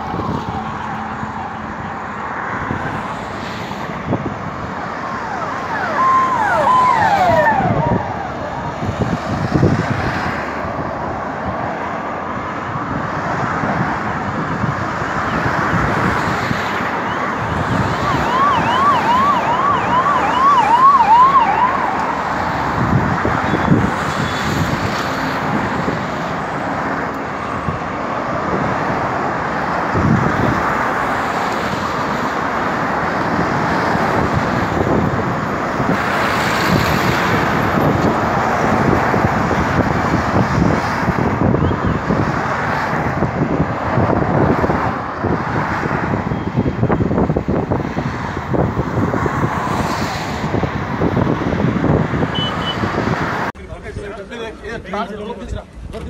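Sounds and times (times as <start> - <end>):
vehicle siren wailing and yelping: 0.0 - 2.0, 4.5 - 9.4, 16.8 - 24.6
street traffic: 0.0 - 56.0.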